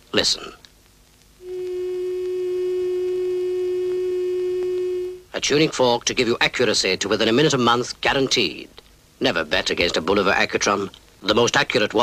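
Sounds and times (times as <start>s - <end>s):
watch tuning fork humming: 1.4s - 5.2s.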